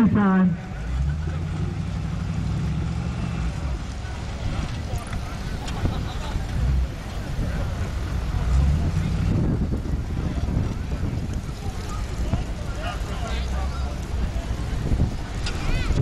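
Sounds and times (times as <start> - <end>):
spectators talking: 0.0 - 16.0
vehicle engine running low: 0.0 - 16.0
wind rumble on microphone: 2.3 - 16.0.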